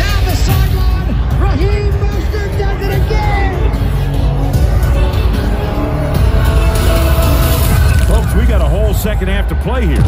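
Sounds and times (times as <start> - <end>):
music with heavy bass: 0.0 - 10.0.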